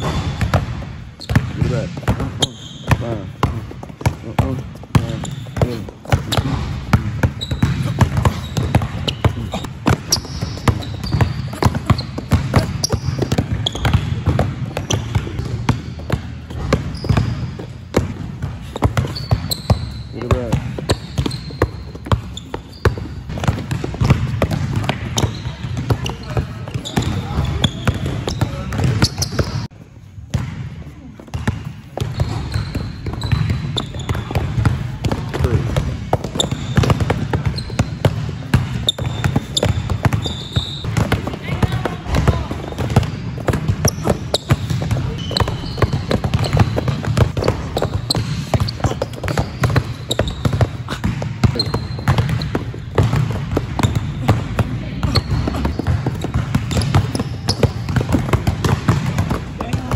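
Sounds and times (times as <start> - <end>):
basketball bouncing on plastic floor: 0.0 - 29.7, 30.3 - 59.9.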